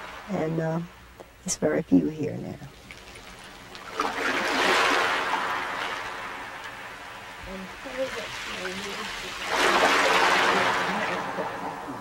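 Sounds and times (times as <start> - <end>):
rushing water: 2.8 - 12.0.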